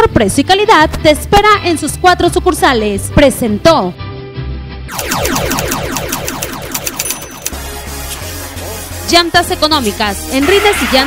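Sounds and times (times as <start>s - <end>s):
electronic falling tones: 4.9s - 7.6s.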